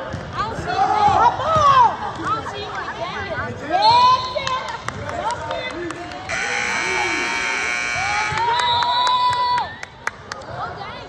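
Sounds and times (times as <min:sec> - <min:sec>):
voices of players and spectators: 0:00.0 - 0:11.0
scoreboard buzzer: 0:06.3 - 0:08.6.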